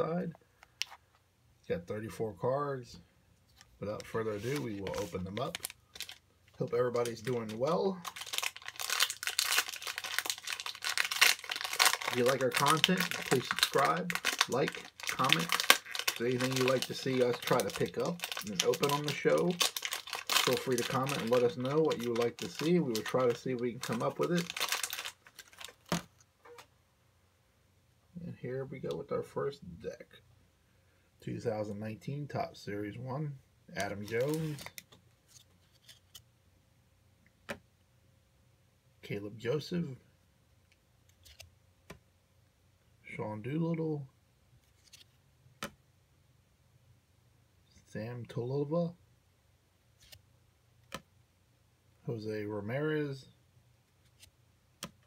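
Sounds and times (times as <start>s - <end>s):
trading cards rustling: 3.5s - 26.7s, 33.8s - 36.2s
plastic wrapper crinkling: 4.0s - 26.7s, 33.8s - 36.2s.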